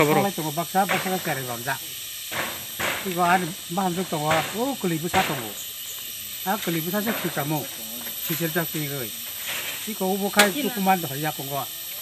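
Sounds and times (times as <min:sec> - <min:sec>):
man speaking: 0:00.0 - 0:00.6
high-pitched hiss: 0:00.0 - 0:12.0.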